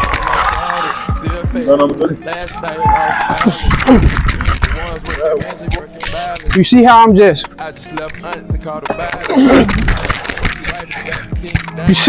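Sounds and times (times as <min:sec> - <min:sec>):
person speaking: 0:00.0 - 0:12.0
rap music: 0:00.0 - 0:12.0.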